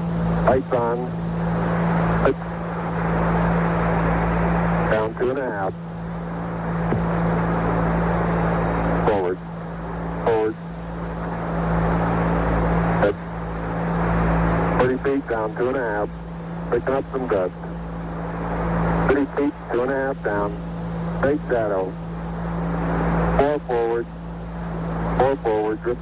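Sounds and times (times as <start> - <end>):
low hum: 0.0 - 26.0
radio static hiss: 0.0 - 26.0
clipped radio voice: 0.5 - 1.1, 4.9 - 5.8, 9.1 - 9.4, 10.3 - 10.6, 14.8 - 16.1, 16.7 - 17.8, 19.1 - 20.6, 21.2 - 22.0, 23.4 - 24.1, 25.2 - 26.0.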